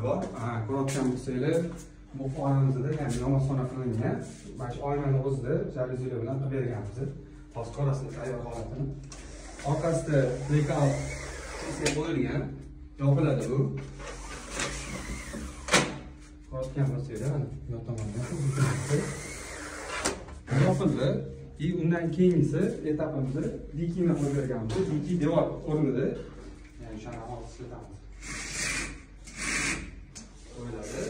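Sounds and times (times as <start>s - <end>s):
small electric motor whirring: 9.2s - 12.0s, 14.0s - 16.0s, 18.2s - 20.2s, 28.2s - 30.0s.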